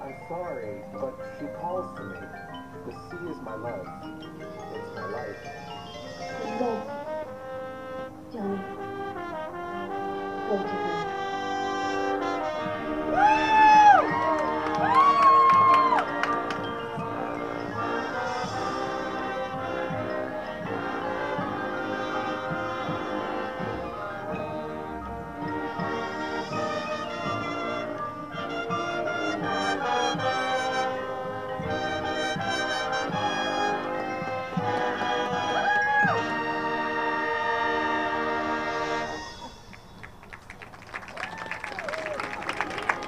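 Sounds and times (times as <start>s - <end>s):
marching band brass chords: 6.4s - 40.6s, 41.9s - 43.0s.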